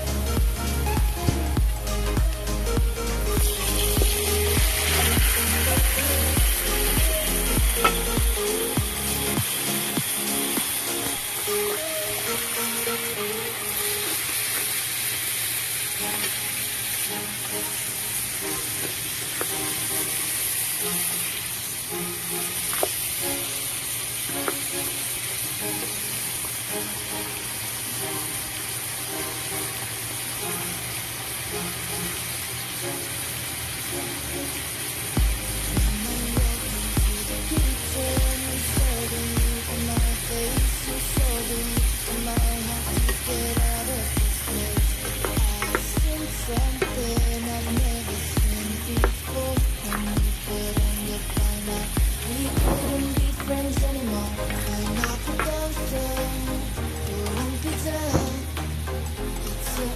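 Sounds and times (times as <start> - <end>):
background music with bass beat: 0.0 - 13.3, 35.2 - 59.9
chicken sizzling in hot oil: 0.0 - 54.2.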